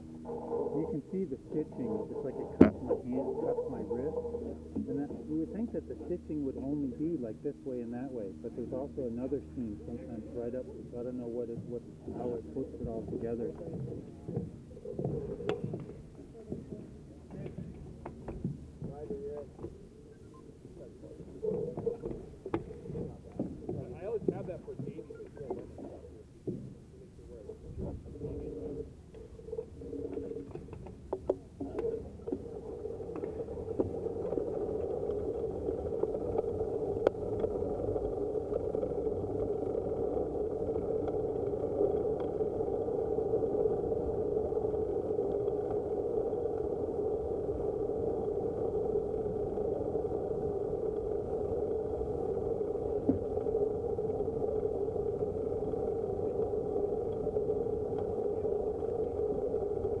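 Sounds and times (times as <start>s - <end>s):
bicycle tyres and drivetrain humming: 0.0s - 60.0s.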